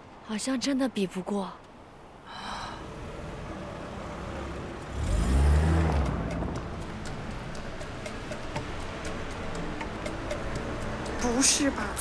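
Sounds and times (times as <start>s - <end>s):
car engine revving: 2.8s - 11.4s.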